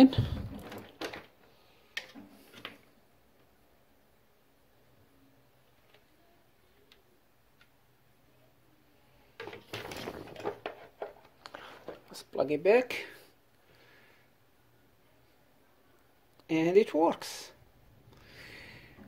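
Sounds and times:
handling noise: 0.0s - 1.5s.

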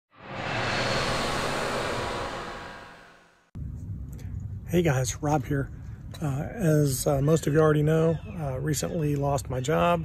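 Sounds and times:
dense rushing whoosh: 0.0s - 3.5s
low hum: 0.0s - 3.6s.

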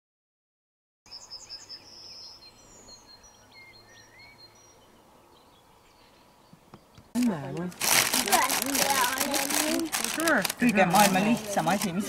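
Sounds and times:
songbirds singing: 1.1s - 7.8s.

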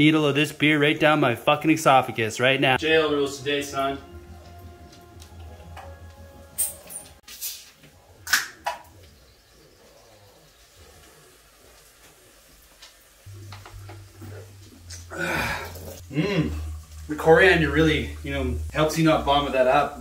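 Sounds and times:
faint music: 0.0s - 20.0s
man gulping beer: 13.4s - 16.7s.

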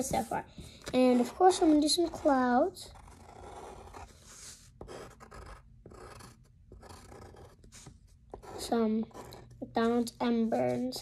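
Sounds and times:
pencil scratching on paper: 0.0s - 11.0s.

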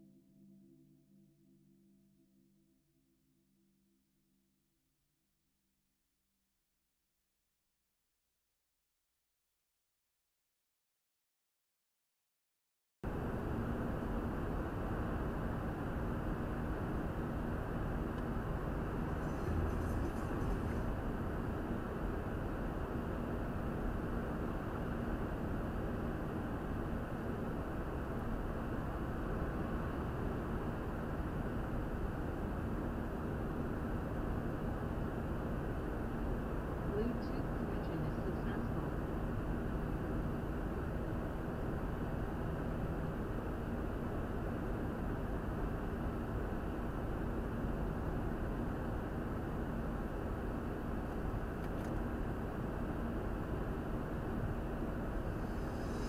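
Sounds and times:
car cabin road rumble: 17.4s - 22.8s.

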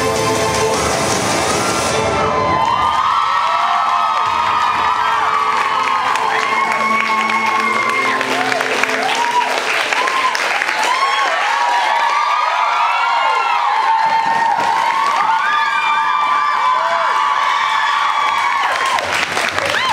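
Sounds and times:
audience whooping and cheering: 0.7s - 19.9s
audience clapping: 2.5s - 19.9s.

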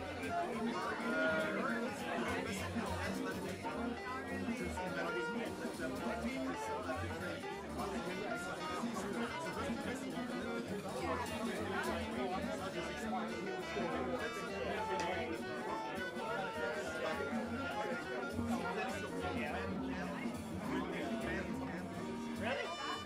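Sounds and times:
crowd chatter: 0.0s - 23.0s.

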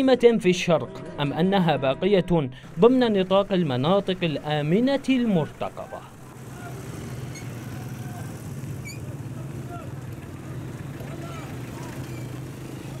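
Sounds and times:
vehicle engines humming: 2.6s - 13.0s
faint voices: 5.9s - 7.0s.

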